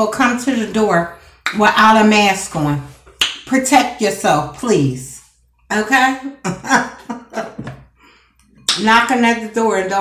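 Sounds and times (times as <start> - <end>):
woman talking: 0.0 - 7.7, 8.7 - 10.0
woman laughing: 6.3 - 7.8.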